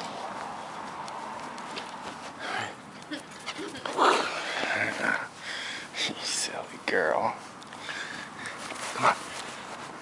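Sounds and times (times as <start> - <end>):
puppy sounds: 2.8 - 5.3.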